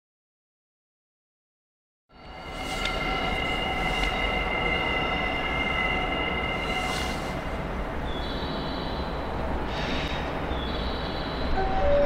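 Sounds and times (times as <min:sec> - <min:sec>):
steady high-pitched tones: 0:02.1 - 0:09.7
locomotive low rumble: 0:02.2 - 0:09.7.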